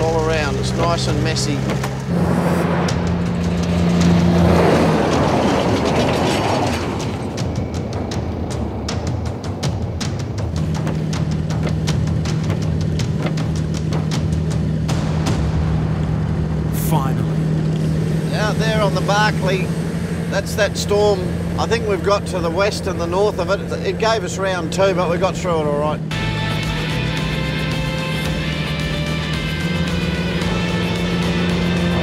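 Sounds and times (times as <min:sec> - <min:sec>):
low music drone: 0:00.0 - 0:32.0.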